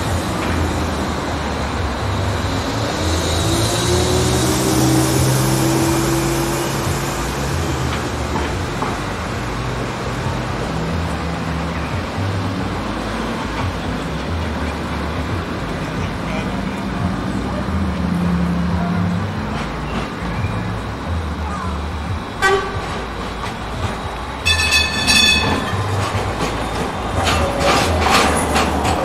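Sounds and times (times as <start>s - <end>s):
low street hum: 0.0s - 29.0s
tram rattling and clattering: 0.0s - 29.0s
tram warning horn: 22.3s - 29.0s.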